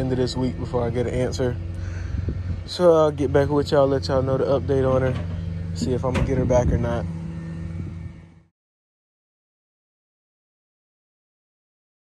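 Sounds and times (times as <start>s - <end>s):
truck engine idling: 0.0s - 8.5s.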